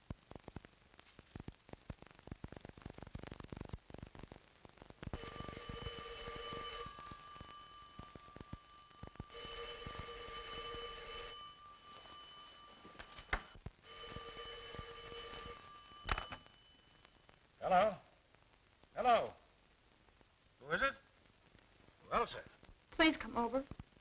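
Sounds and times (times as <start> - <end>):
electric telephone bell ringing: 5.2 - 17.0.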